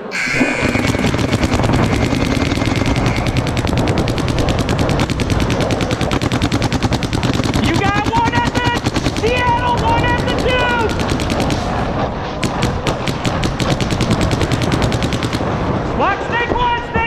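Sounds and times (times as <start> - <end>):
paintball markers firing rapidly: 0.0 - 15.6.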